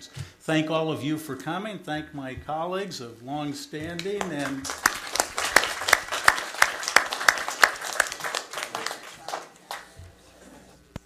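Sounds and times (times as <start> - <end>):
loud nearby hand claps: 3.9 - 9.9
applause: 4.0 - 9.9.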